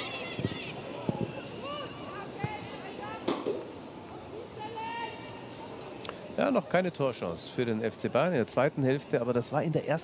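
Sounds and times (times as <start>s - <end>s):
low crowd murmur: 0.0s - 10.0s.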